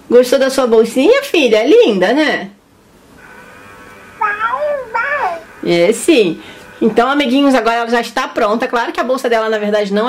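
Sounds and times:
faint steady hum: 0.0s - 10.0s
electronic baby doll voice: 4.2s - 5.4s.

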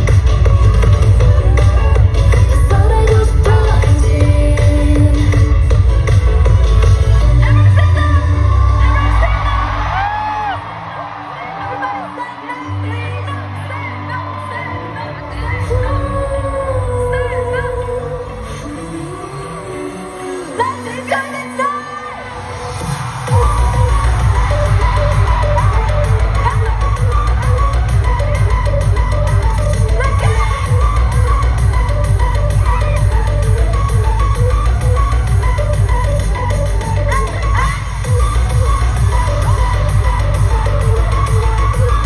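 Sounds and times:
live pop music over sound system: 0.0s - 42.0s.

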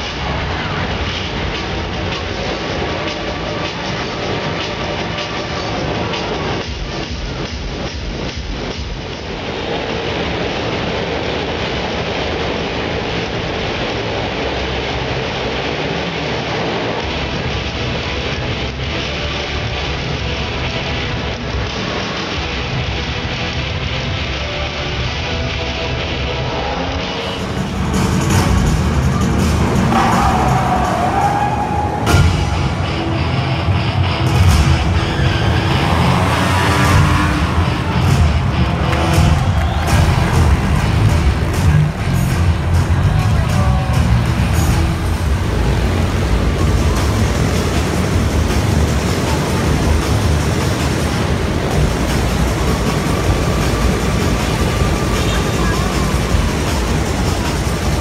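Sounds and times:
loud show music: 0.0s - 58.0s
motorcycle engines running: 0.0s - 58.0s.

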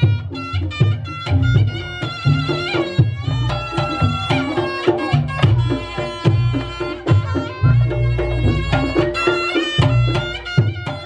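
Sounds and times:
reed shawm melody: 0.0s - 11.0s.

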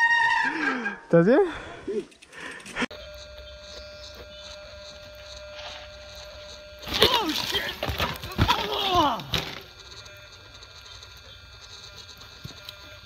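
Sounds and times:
steady low hum: 1.6s - 13.0s
bike crash clatter: 6.8s - 9.7s
rider crying out: 6.9s - 9.5s.

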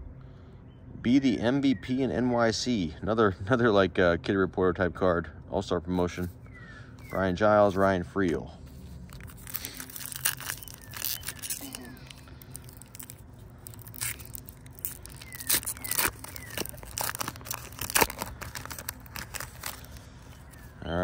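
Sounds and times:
cards shuffling: 7.6s - 20.8s
foil wrapper tearing and crinkling: 8.9s - 20.8s.

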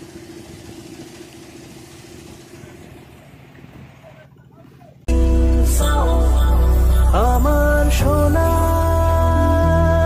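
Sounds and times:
wind and water hiss: 0.0s - 4.4s
motorboat engine humming: 0.0s - 10.0s.

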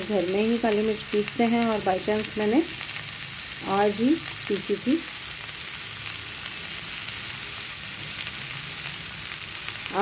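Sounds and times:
vegetables sizzling in oil: 0.0s - 10.0s.

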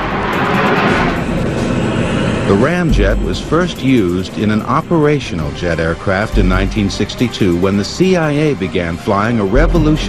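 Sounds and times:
background music: 0.0s - 10.0s
deep steady rumble: 0.0s - 10.0s
rushing jet engine: 0.0s - 10.0s.

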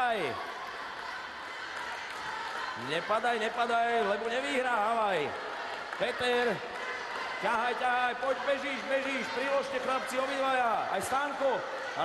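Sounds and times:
pool hall background noise: 0.0s - 12.0s.

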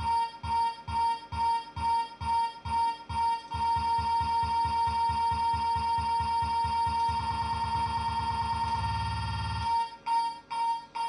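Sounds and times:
electronic dance music: 0.0s - 9.8s.

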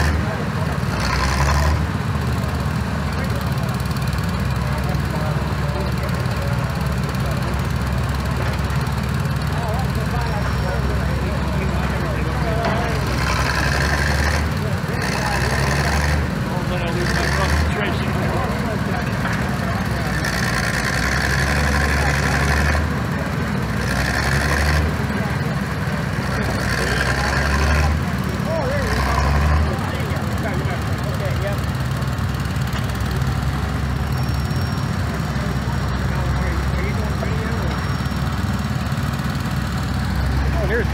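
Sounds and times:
tractor engines running: 0.0s - 40.9s.

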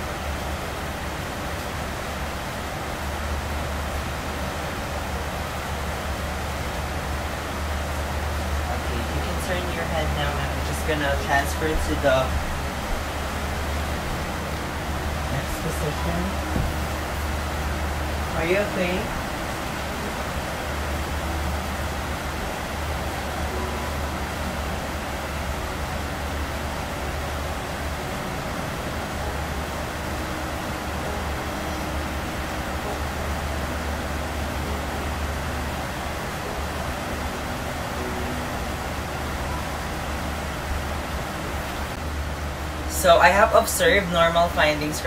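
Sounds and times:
air conditioner humming: 0.0s - 45.0s.

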